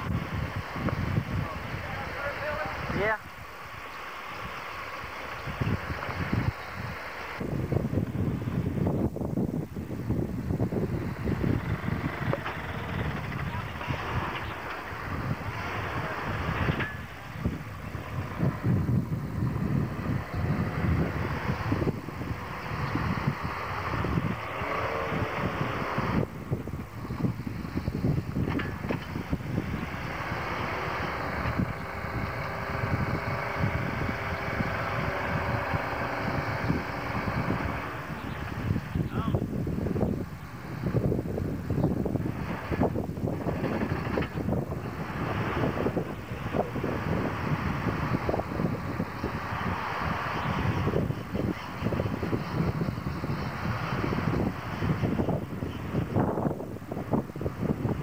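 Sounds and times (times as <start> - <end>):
truck engine running: 0.0 - 58.0
wind noise on microphone: 0.0 - 58.0.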